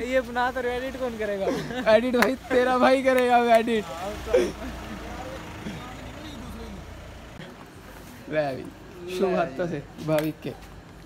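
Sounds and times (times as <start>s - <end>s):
motor vehicle rumbling: 0.0s - 11.0s.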